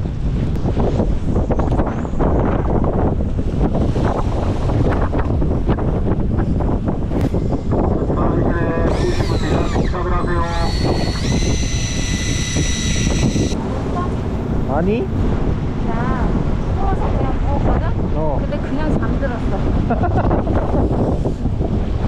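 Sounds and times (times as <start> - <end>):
wind buffeting microphone: 0.0 - 22.0
high steady whine: 7.6 - 16.0.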